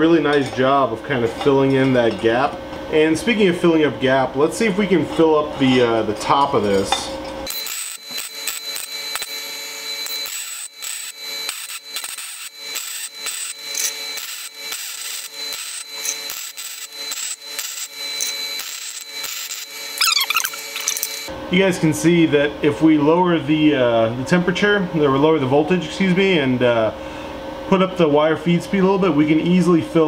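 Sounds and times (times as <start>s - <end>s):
welding arc crackling: 7.5s - 21.3s.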